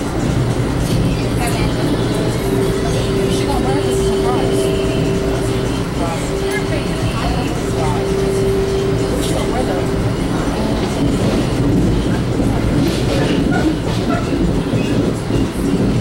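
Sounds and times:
steady tone: 0.0s - 12.8s
train wheels rumbling on rail: 0.0s - 16.0s.

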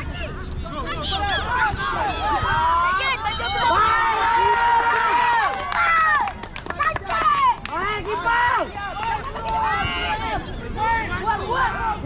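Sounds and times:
people shouting: 1.0s - 6.2s.

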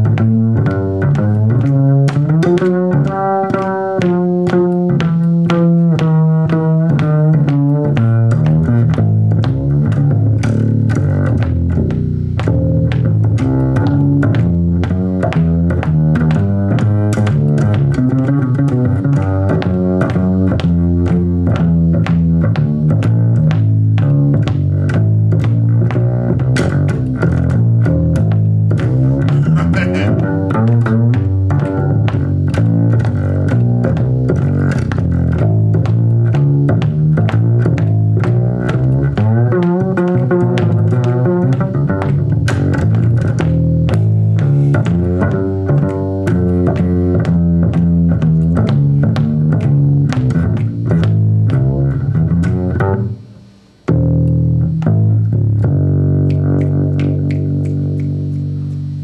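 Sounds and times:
upright bass plucked blues: 0.0s - 59.0s.

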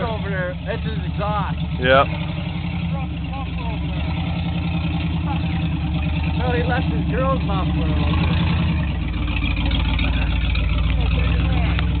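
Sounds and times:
truck engine idling: 0.0s - 12.0s.

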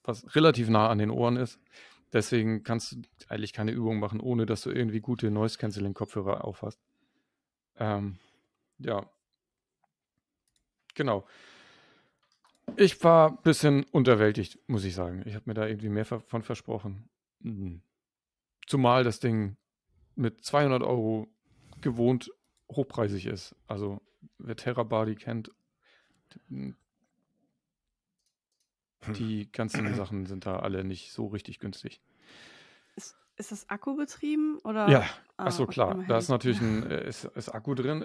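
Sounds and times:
person speaking: 12.7s - 15.3s, 29.0s - 30.9s, 34.7s - 38.0s.

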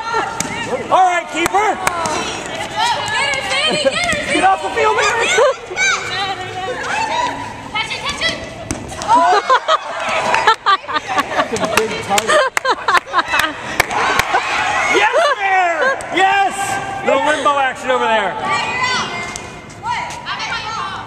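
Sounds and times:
balls bouncing on floor: 1.4s - 4.4s, 8.0s - 9.2s.

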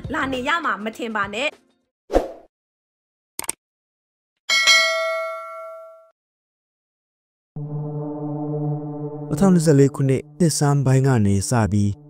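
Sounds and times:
bell-like metallic ding: 4.5s - 6.1s.

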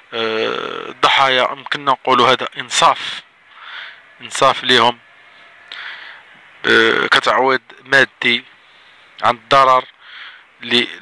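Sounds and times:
faint steady hiss: 0.0s - 11.0s
soft breath: 3.5s - 4.1s, 5.2s - 6.4s, 8.6s - 9.2s, 10.0s - 10.6s.

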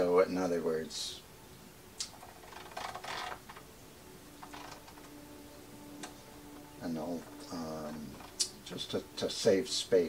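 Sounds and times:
metal arm clicking and rubbing: 2.0s - 3.7s, 4.4s - 5.2s.

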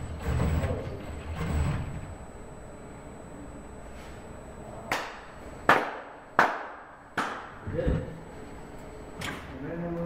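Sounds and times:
sharp hand claps: 4.9s - 7.5s.

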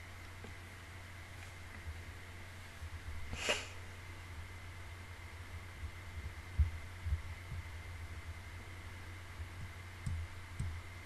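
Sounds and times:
low electrical hum: 0.0s - 11.0s
soft low thumps: 5.3s - 11.0s.

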